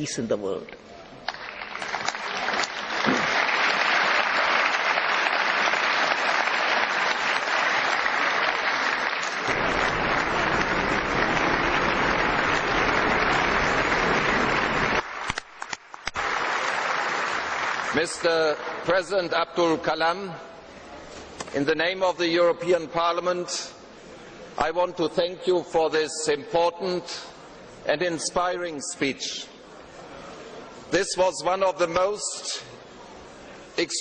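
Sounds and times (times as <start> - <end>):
large audience applauding: 1.3 - 18.9.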